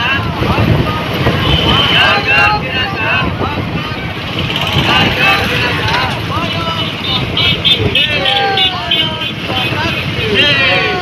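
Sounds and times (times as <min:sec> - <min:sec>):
motorcycle engines at low speed: 0:00.0 - 0:11.0
voices calling out: 0:00.0 - 0:11.0.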